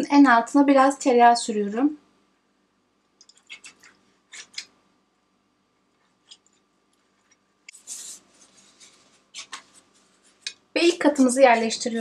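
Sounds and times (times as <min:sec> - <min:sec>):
pastry brush strokes on glass: 0:07.7 - 0:10.5.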